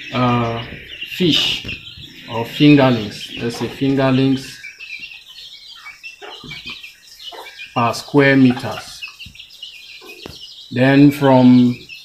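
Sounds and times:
bird chirps: 0:00.0 - 0:12.0
chickens clucking: 0:00.0 - 0:12.0.

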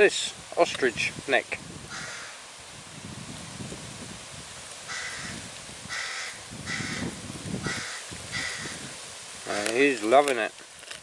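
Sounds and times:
crow cawing: 0:01.9 - 0:02.4, 0:04.9 - 0:09.0.

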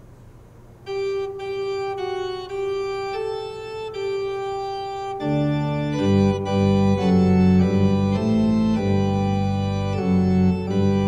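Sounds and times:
low steady room hum: 0:00.0 - 0:11.0
organ playing held chords: 0:00.8 - 0:11.0.

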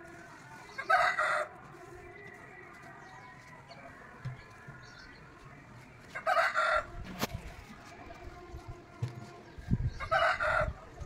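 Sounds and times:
chicken calling: 0:00.6 - 0:01.5, 0:06.1 - 0:06.9.

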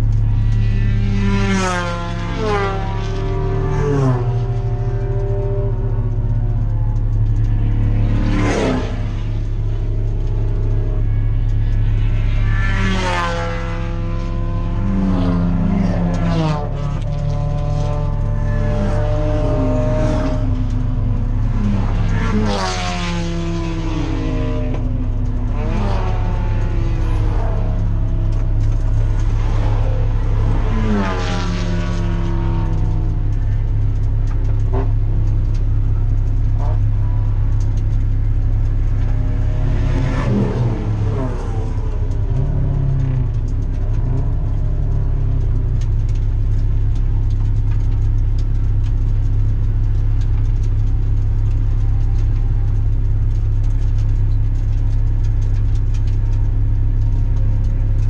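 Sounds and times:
race cars passing: 0:00.0 - 0:49.2
car engine droning: 0:00.0 - 0:58.0.

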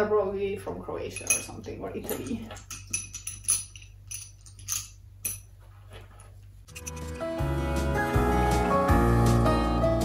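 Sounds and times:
seashells clinking into glass jar: 0:01.2 - 0:05.5
background music: 0:06.7 - 0:10.0.

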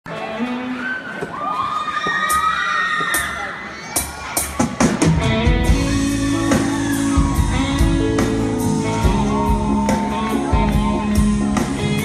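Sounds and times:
audience cheering and shouting: 0:00.1 - 0:12.0
live band with electric guitar: 0:03.1 - 0:12.0.

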